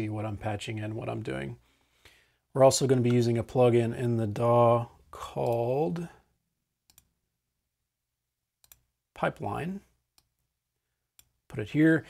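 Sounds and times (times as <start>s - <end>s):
computer mouse clicks: 6.9s - 7.1s, 8.6s - 8.9s.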